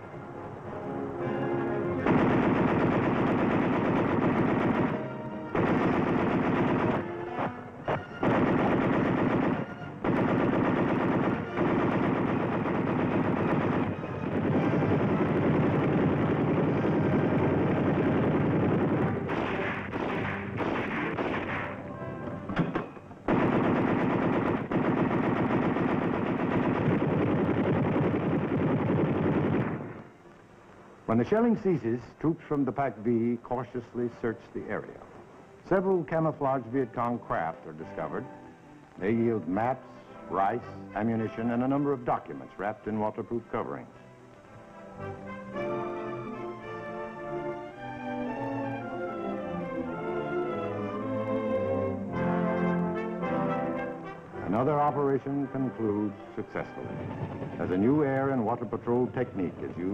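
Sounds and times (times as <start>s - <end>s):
machine guns firing: 2.0s - 21.8s, 23.3s - 30.0s, 56.6s - 59.9s.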